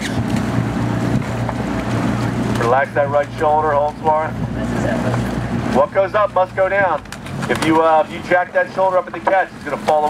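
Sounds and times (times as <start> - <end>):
outboard motor humming: 0.0 - 10.0
water rushing: 0.0 - 10.0.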